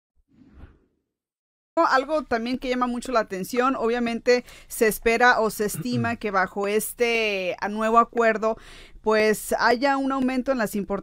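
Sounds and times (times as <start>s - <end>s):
man speaking: 5.8s - 6.2s.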